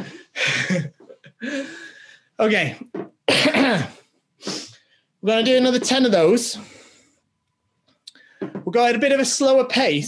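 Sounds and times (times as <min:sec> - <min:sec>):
man coughing: 0:03.3 - 0:04.0.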